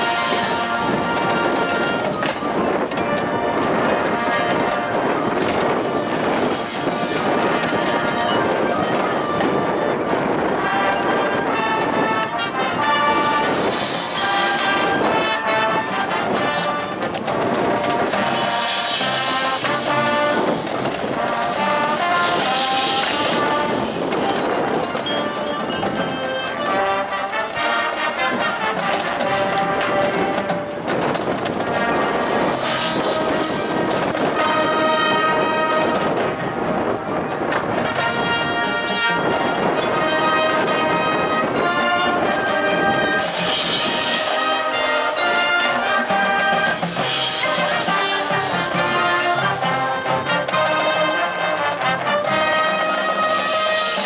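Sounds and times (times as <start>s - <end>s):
brass section playing melody: 0.0s - 54.0s
marching percussion: 0.0s - 54.0s.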